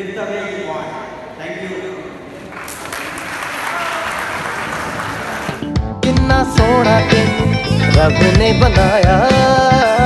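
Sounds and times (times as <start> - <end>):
audience applauding: 2.5 - 5.8
music: 5.4 - 10.0.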